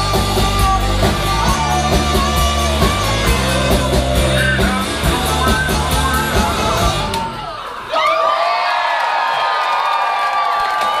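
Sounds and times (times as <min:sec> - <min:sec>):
live rock song: 0:00.0 - 0:07.6
audience cheering and whooping: 0:01.3 - 0:11.0.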